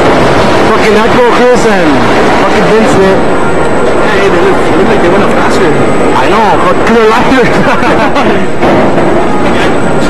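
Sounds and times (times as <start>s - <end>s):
loud continuous voices: 0.0s - 10.0s.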